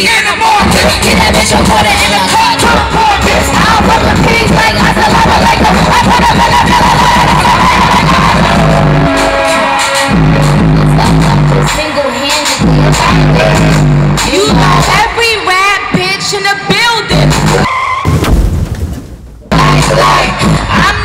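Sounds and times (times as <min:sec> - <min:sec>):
loud live concert music: 0:00.0 - 0:16.4, 0:17.0 - 0:17.7, 0:19.5 - 0:21.0
steady bass line: 0:00.6 - 0:15.3, 0:17.1 - 0:17.7, 0:19.4 - 0:21.0.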